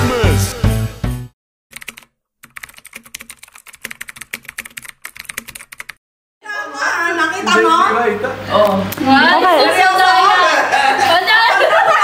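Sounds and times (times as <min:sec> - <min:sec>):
keyboard typing: 0:01.7 - 0:06.0.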